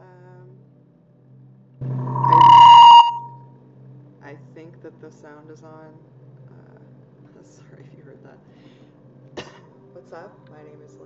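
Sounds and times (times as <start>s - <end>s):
loud electronic ringing tone: 1.8s - 3.4s.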